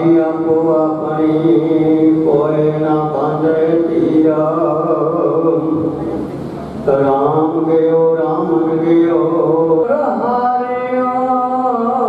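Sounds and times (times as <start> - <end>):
man chanting prayer over loudspeaker: 0.0 - 12.0.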